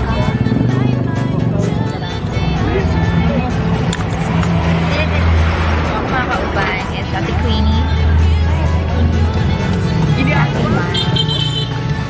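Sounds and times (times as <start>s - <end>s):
vehicle engine humming: 0.0s - 12.0s
voices chattering: 0.0s - 12.0s.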